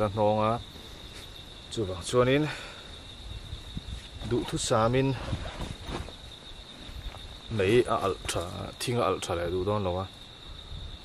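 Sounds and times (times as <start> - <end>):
high-pitched insect trill: 0.0 - 11.0.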